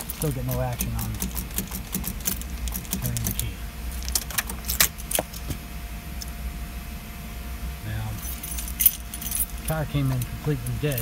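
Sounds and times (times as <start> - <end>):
ignition key and keyring clicking: 0.0 - 5.4
steady low hum: 0.0 - 11.0.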